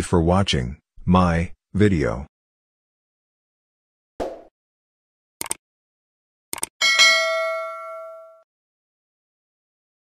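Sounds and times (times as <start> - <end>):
notification bell ding: 6.8 - 8.5.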